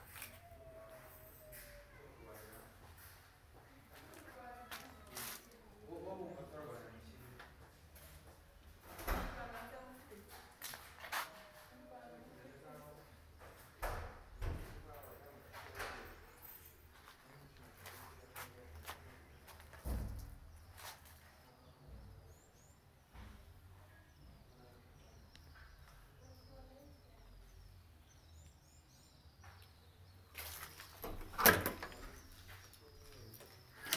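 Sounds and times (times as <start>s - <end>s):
faint background voices: 0.0s - 29.3s.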